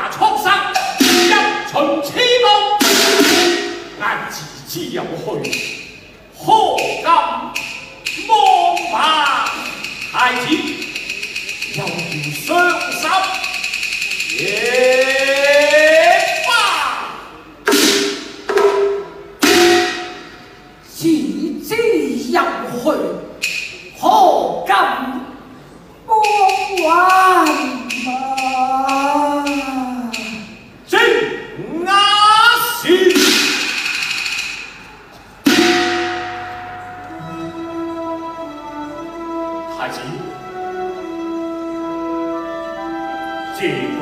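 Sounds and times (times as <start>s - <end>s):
gong and cymbal strikes: 1.0s - 1.7s, 2.8s - 4.0s, 17.7s - 20.6s, 35.5s - 37.9s.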